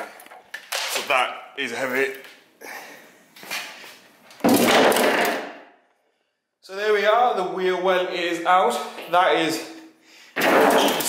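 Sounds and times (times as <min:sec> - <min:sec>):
sheet metal crashing on concrete: 0:10.4 - 0:11.0.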